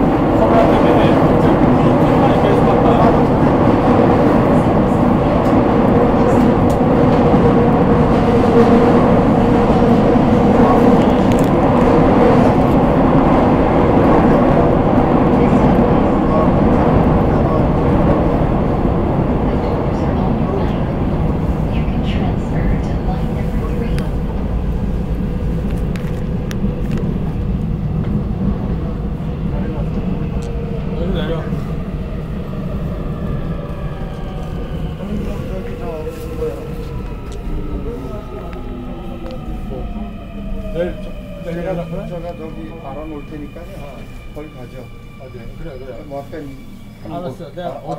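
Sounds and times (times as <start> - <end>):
train rumbling: 0.0 - 47.9.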